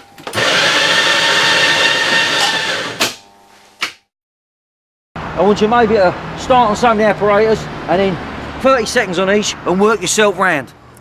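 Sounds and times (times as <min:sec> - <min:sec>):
coffee machine whirring hiss: 0:00.3 - 0:03.6.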